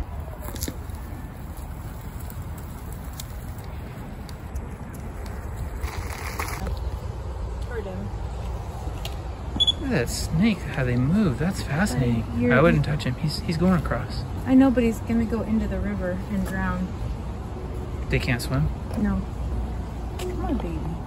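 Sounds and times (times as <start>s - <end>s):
scooter rolling on dirt path: 0.0s - 21.0s.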